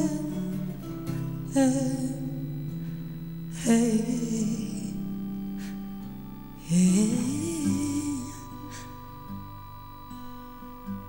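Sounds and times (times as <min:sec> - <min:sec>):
woman singing: 0:00.0 - 0:00.6, 0:01.5 - 0:02.6, 0:03.5 - 0:05.0, 0:06.6 - 0:08.9
acoustic guitar: 0:00.0 - 0:11.0.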